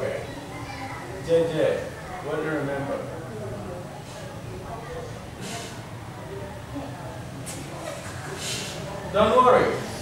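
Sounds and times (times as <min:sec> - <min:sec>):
faint indistinct speech: 0:00.0 - 0:10.0.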